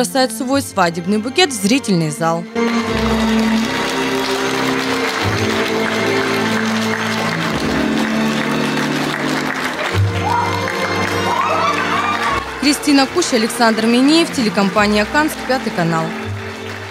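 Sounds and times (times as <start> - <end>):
music with held chords: 2.5 - 16.9
audience applause: 2.6 - 16.9.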